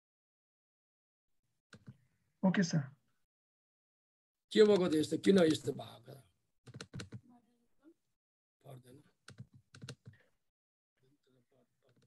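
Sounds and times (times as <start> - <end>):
faint keyboard typing: 1.7 - 2.0, 4.6 - 5.7, 6.6 - 7.2, 9.2 - 10.3, 11.8 - 12.0.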